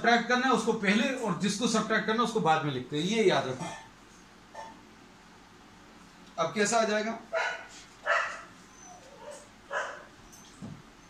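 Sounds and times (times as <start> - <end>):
dog barking: 4.6 - 4.8, 7.3 - 8.5, 9.2 - 10.1.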